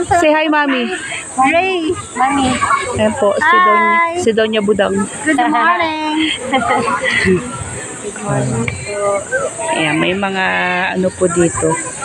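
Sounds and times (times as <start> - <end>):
women talking and laughing: 0.0 - 12.0.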